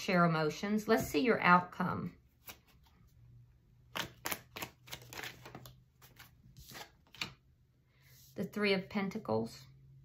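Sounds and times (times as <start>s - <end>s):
cards clicking and snapping: 3.9s - 7.4s.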